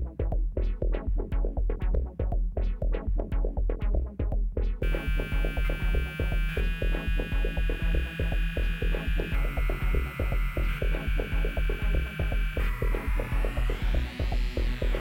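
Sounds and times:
fast drum machine beat: 0:04.8 - 0:15.0
sustained synth tone: 0:04.8 - 0:15.0.

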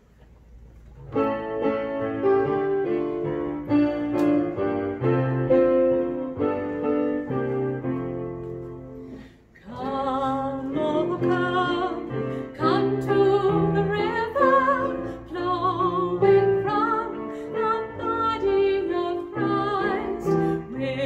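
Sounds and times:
piano playing hymn chords: 0:01.0 - 0:21.0
woman singing with vibrato: 0:09.6 - 0:21.0.

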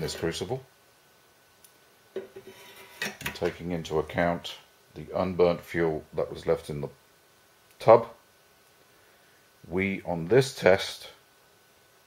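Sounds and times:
metal fork scraping metal stove: 0:02.4 - 0:03.4.

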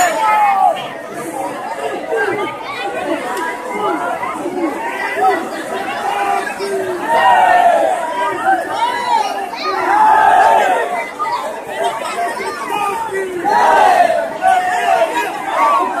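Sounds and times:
crowd calling and talking: 0:00.0 - 0:16.0.

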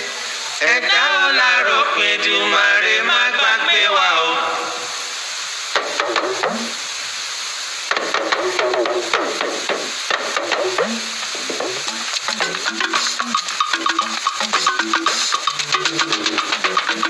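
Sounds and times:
talking drum with bending pitch: 0:05.8 - 0:06.8, 0:07.9 - 0:17.0
shaker-like percussion: 0:07.9 - 0:17.0
instruments playing short stepped notes: 0:10.2 - 0:17.0.

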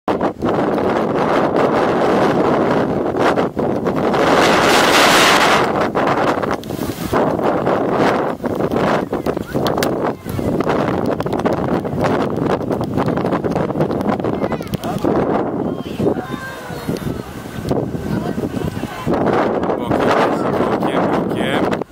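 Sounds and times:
gusty wind buffeting microphone: 0:00.1 - 0:21.9.

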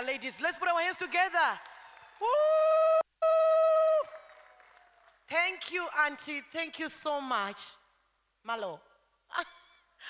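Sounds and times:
person cheering woo: 0:01.8 - 0:05.0.

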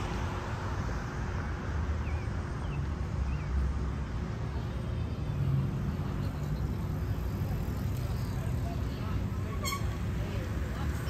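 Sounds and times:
passing cars rumbling: 0:00.0 - 0:11.0.

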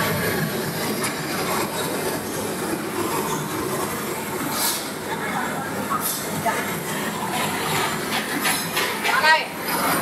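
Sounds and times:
conveyor running: 0:00.0 - 0:10.0.

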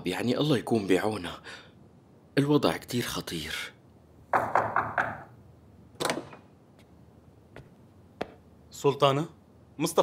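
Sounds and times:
door latch clicks: 0:06.0 - 0:06.4.

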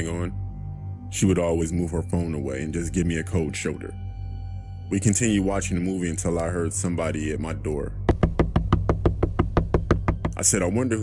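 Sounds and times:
low music drone: 0:00.0 - 0:08.1
rapid knocking on wooden door: 0:08.1 - 0:10.5.

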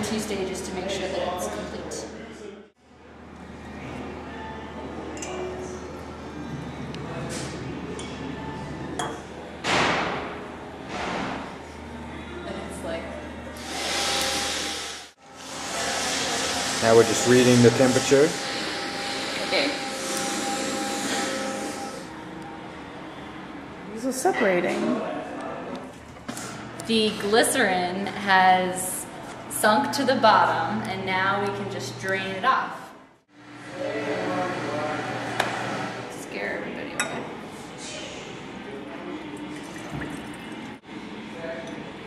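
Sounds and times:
glassware clinking: 0:09.0 - 0:09.3, 0:37.0 - 0:37.3
lab equipment whirring: 0:10.5 - 0:24.3
liquid pouring into glass bottle: 0:39.4 - 0:40.8.

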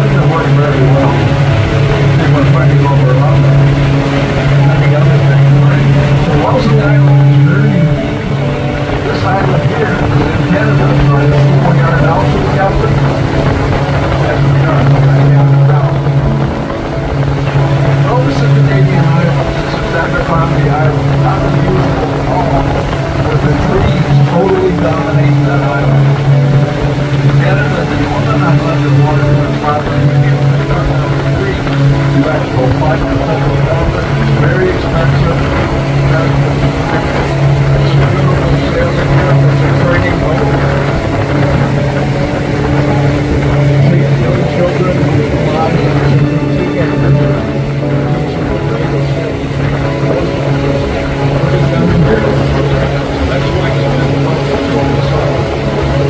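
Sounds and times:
boat engine droning: 0:00.0 - 0:56.0
faint voices: 0:00.0 - 0:56.0
water noise: 0:00.0 - 0:56.0
wind noise: 0:00.0 - 0:56.0.

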